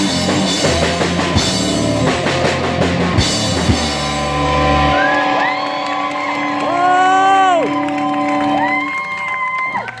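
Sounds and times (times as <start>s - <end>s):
rock band guitars ringing: 0.0s - 9.1s
high whoop: 4.9s - 10.0s.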